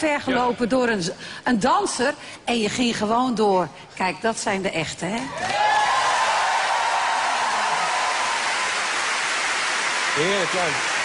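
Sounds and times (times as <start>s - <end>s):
audience applauding: 5.4s - 11.0s.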